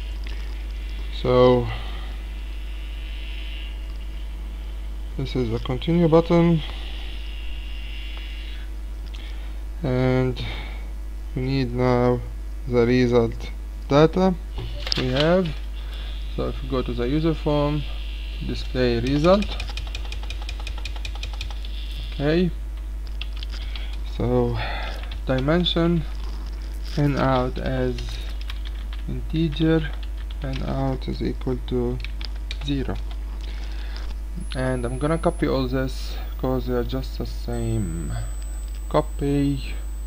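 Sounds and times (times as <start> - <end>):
electrical mains hum: 0.0 - 40.0
keyboard or mouse clicks: 19.0 - 21.7.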